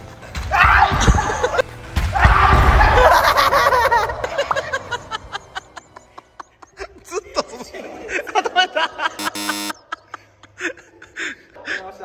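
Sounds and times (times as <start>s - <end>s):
wrong-answer buzzer: 9.2s - 9.9s.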